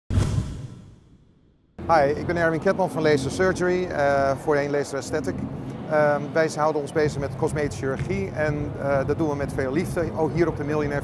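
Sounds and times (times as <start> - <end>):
low rumble: 0.1 - 2.5.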